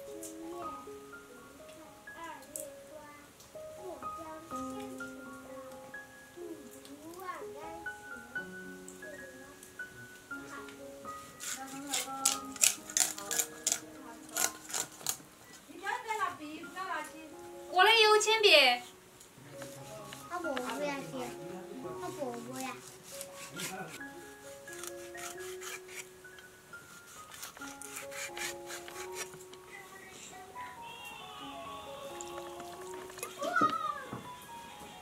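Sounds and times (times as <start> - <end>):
background music: 0.0 - 35.0
cleaver scraping fish: 11.4 - 15.2, 22.3 - 24.0, 24.7 - 26.1, 27.0 - 29.4
cleaver slicing fish on wooden board: 27.3 - 29.3.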